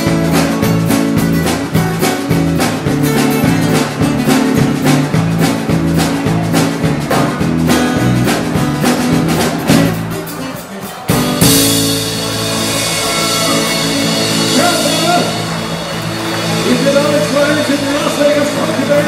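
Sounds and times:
bass guitar: 0.0s - 19.0s
drum kit beat: 0.0s - 19.0s
electric guitar: 0.0s - 19.0s
strummed acoustic guitars: 0.0s - 19.0s.

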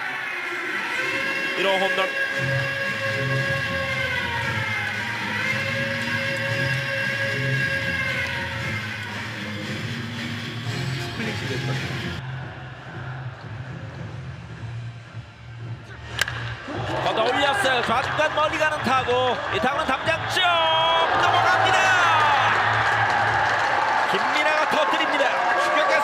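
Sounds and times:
crowd of fans: 0.0s - 14.6s, 15.9s - 26.0s
ballpark cheering music: 0.0s - 14.8s, 15.6s - 26.0s
wooden bat cracking ball: 16.2s - 16.6s
tv commentator talking: 17.1s - 22.0s.

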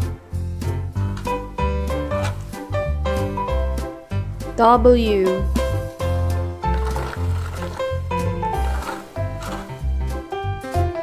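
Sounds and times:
cheerful children's music: 0.0s - 11.0s.

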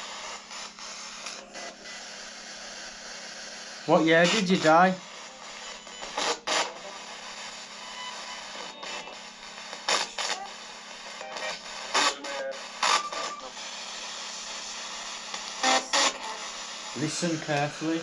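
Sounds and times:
radio bursts skipping stations: 0.0s - 18.0s
radio static hiss: 0.0s - 18.0s.

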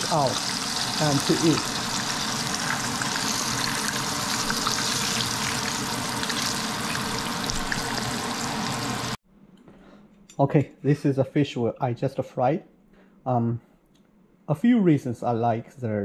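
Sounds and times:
fish frying in hot oil: 0.0s - 9.2s
oil crackling and popping: 0.0s - 9.2s.

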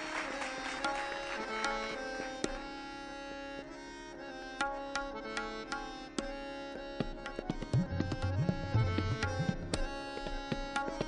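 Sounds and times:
tabla strikes: 0.0s - 2.8s, 4.6s - 6.4s, 7.0s - 11.0s
melodic accompaniment of held notes: 0.0s - 11.0s.

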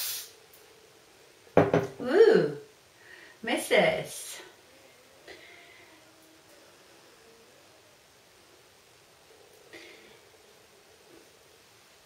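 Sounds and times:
aerosol hairspray hiss: 0.0s - 0.4s.

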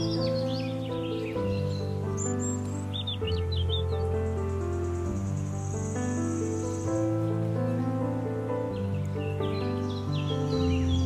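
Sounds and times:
soft instrumental music: 0.0s - 11.0s
insect trilling: 4.3s - 7.4s.

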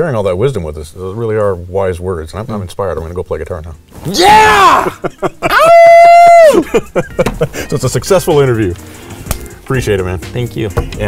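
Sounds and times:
man laughing loudly: 4.6s - 7.8s.

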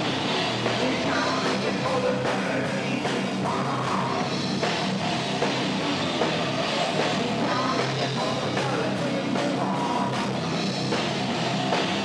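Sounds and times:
drum kit: 0.0s - 12.0s
live heavy metal band: 0.0s - 12.0s.

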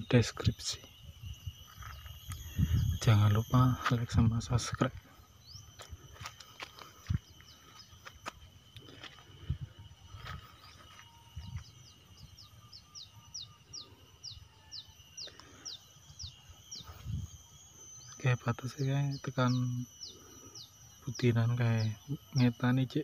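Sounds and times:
faint steady high hum: 0.0s - 23.0s.

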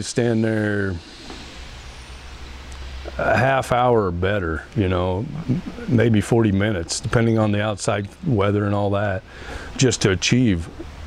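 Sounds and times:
faint even hiss: 0.0s - 11.0s
low engine rumble: 0.0s - 11.0s.

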